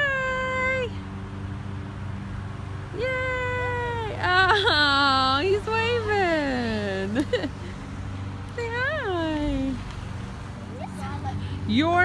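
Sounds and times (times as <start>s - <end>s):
car engine hum: 0.0s - 12.0s.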